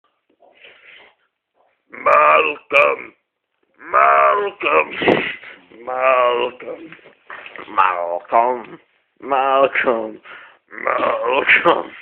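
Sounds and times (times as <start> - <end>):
faint breath from person: 10.2 - 10.7.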